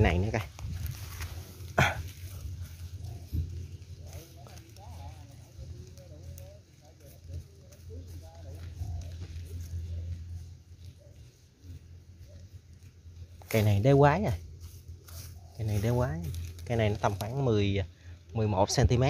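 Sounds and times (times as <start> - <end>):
steady low rumble: 0.0 - 15.0
hand raking through dry leaves: 0.0 - 17.8
faint wavering calls: 14.5 - 16.5.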